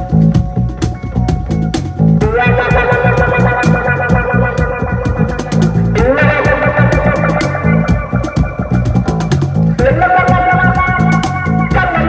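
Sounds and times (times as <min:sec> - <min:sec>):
bass line: 0:00.0 - 0:12.0
cajon beat: 0:00.0 - 0:12.0
cigar box guitar sliding notes: 0:00.0 - 0:12.0.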